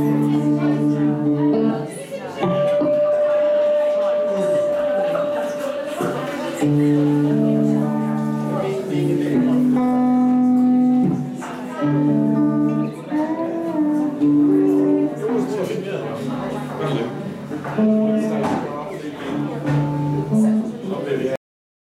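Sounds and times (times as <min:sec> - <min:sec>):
guitars and bass: 0:00.0 - 0:05.6, 0:06.2 - 0:20.8
long held notes changing pitch: 0:00.0 - 0:05.9, 0:06.5 - 0:17.2.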